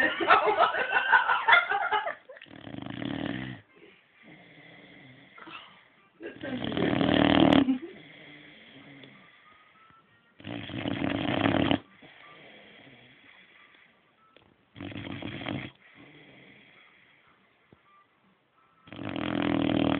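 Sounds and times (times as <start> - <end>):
dog snoring: 2.4 - 5.5, 6.4 - 9.7, 10.4 - 13.9, 14.7 - 17.4, 18.8 - 19.9.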